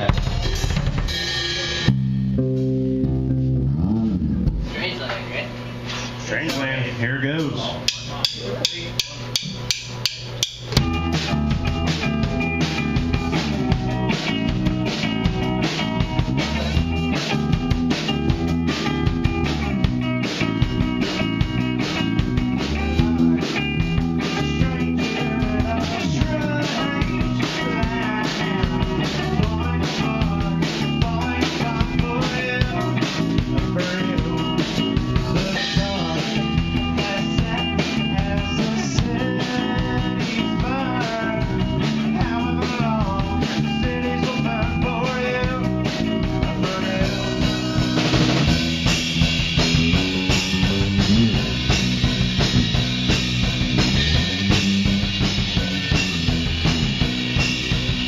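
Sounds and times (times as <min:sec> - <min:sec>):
electric guitar: 0:00.0 - 0:06.1, 0:09.3 - 0:58.0
bass guitar: 0:00.0 - 0:58.0
drum kit beat: 0:00.0 - 0:58.0.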